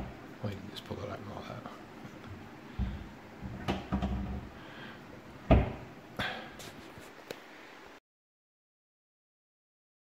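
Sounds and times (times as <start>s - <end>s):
cupboard doors knocking shut: 2.8s - 4.6s, 5.5s - 5.9s.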